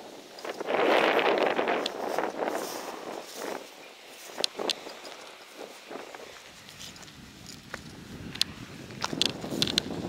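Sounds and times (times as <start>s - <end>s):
footsteps on gravel: 0.1s - 10.0s.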